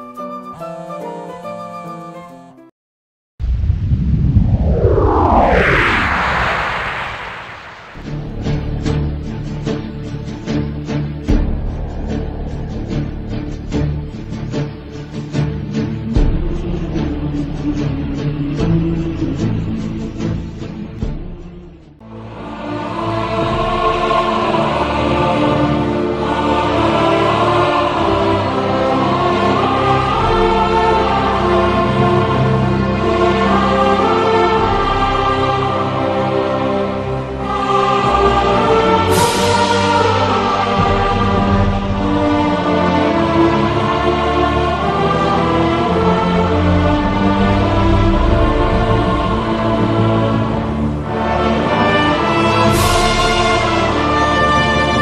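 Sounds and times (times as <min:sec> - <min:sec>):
whoosh with rising hiss: 0:03.4 - 0:09.0, 0:15.4 - 0:22.0, 0:38.5 - 0:41.6
choir singing held chords: 0:06.6 - 0:55.0.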